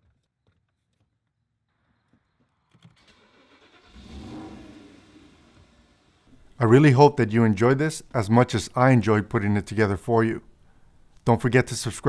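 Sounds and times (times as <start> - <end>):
car engine starting: 2.9 - 6.6.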